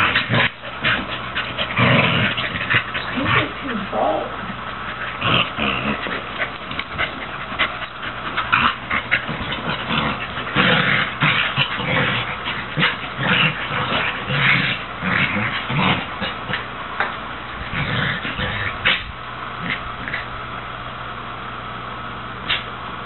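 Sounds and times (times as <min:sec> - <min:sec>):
dogs growling and whining: 0:00.0 - 0:16.8, 0:17.5 - 0:20.4.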